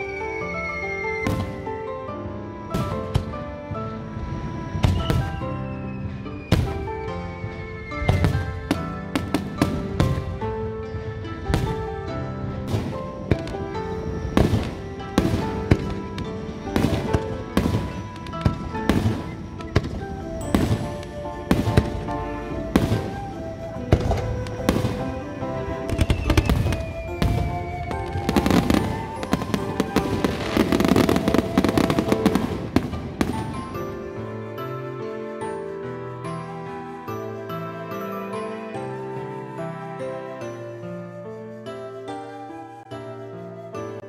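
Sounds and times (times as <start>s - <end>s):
background music: 0.0s - 44.0s
firework crackling: 2.7s - 34.7s
firework shells bursting: 12.6s - 33.9s.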